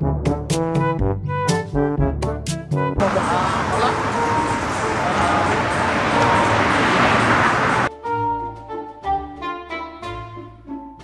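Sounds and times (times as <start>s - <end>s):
brass-like held notes music: 2.9s - 8.2s
street noise: 3.0s - 7.9s.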